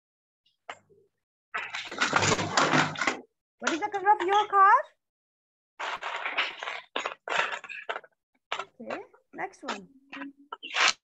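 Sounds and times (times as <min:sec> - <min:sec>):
small objects rustling and rattling: 0:01.5 - 0:04.7, 0:05.8 - 0:11.0.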